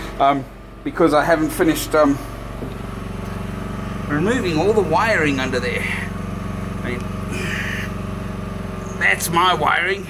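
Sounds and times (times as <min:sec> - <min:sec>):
generator engine humming: 0:00.0 - 0:10.0.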